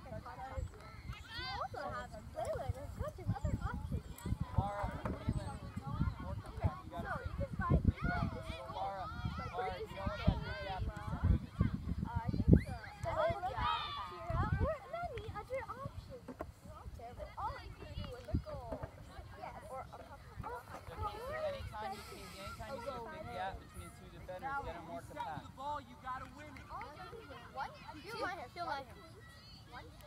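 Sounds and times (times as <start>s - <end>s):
wind rumble on microphone: 0.0s - 21.8s
girls shouting and calling: 0.8s - 4.3s, 12.4s - 16.2s.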